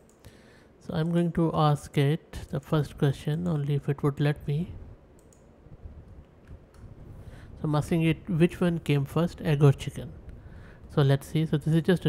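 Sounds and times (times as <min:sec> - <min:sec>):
low background hum: 0:00.0 - 0:12.0
computer keyboard clicks: 0:05.2 - 0:05.5.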